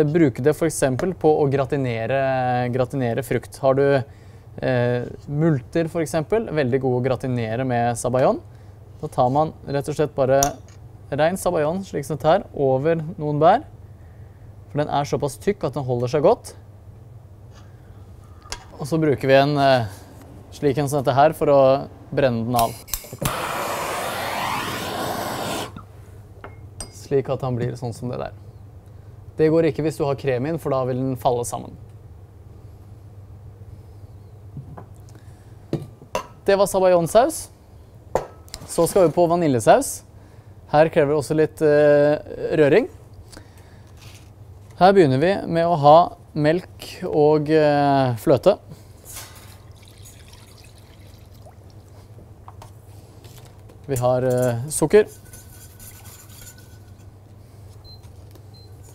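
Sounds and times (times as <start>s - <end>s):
gas torch hissing: 22.6s - 25.9s
liquid pouring into saucepan: 49.6s - 52.0s.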